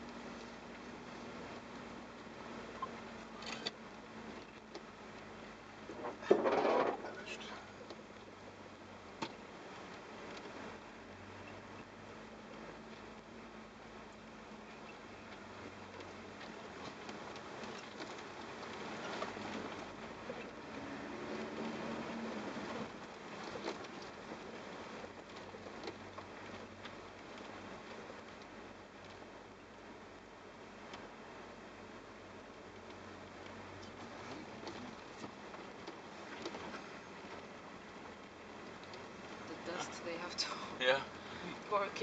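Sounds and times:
faint clatter: 0.0 - 13.4, 14.0 - 31.1, 32.3 - 42.0
gravel and bodywork rattling: 0.0 - 30.2
tyres and engine rumbling: 0.0 - 42.0
vehicle cabin running noise: 0.0 - 42.0.

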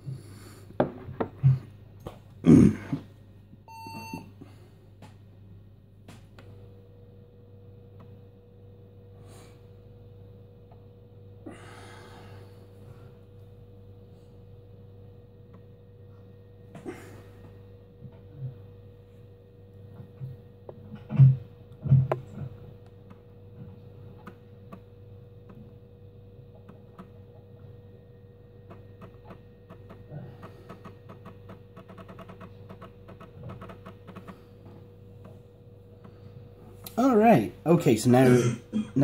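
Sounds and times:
faint hum: 0.0 - 39.0.

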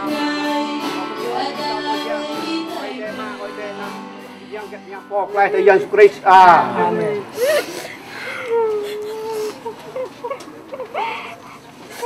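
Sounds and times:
women sobbing and wailing: 6.9 - 11.6.

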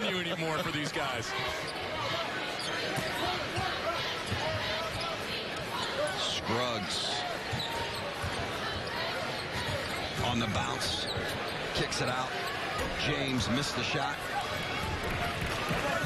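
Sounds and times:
sneakers squeaking on floor: 7.4 - 11.8.

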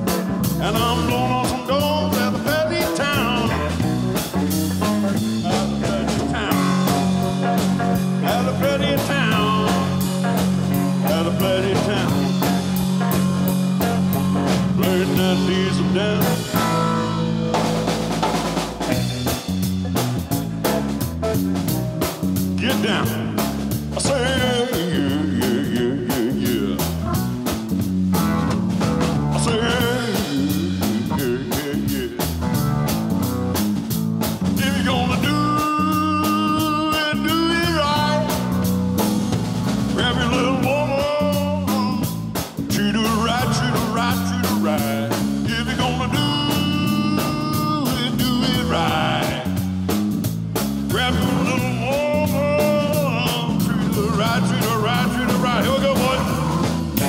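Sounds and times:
bass line: 0.0 - 57.0
drum kit: 0.0 - 57.0
electric guitar: 0.0 - 57.0
keyboard: 0.0 - 57.0.

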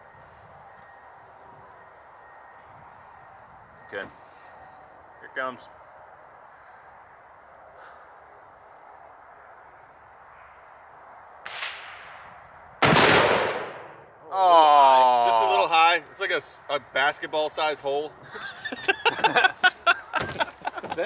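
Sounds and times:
rifle shot: 11.4 - 14.1
man's drawn-out exclamation: 14.3 - 15.9.

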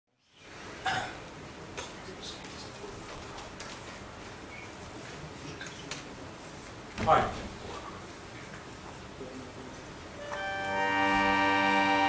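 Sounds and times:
background hiss: 0.1 - 12.0
cough or hiccup: 0.8 - 1.2.

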